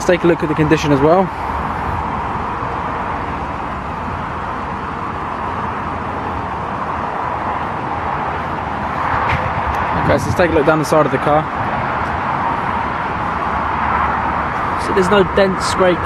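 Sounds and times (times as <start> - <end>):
outdoor background rush: 0.0 - 16.0.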